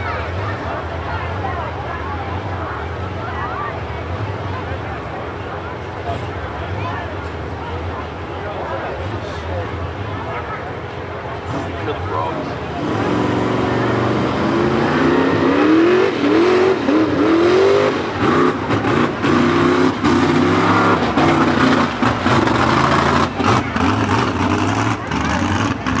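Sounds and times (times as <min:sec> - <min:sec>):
truck engine revving: 0:00.0 - 0:26.0.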